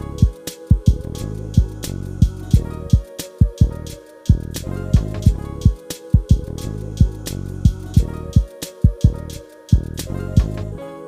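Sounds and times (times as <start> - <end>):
hip-hop beat: 0.0 - 11.0.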